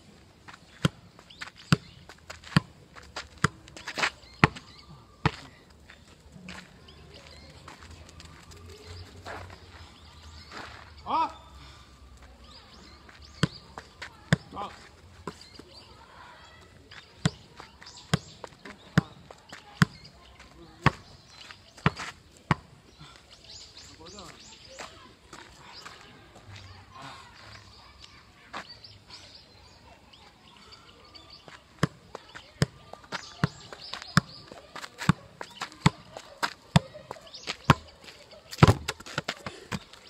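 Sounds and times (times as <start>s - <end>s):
ball kick thuds: 38.6s - 39.9s.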